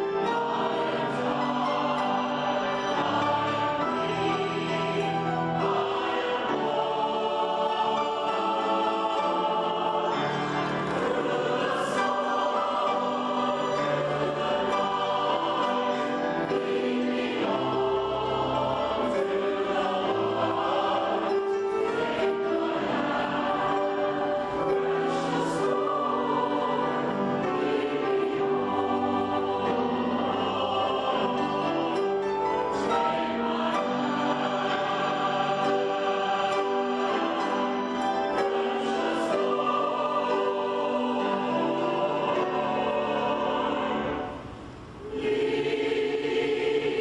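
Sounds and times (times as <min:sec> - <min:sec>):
choir singing a hymn: 0:00.0 - 0:47.0
orchestral accompaniment: 0:00.0 - 0:47.0.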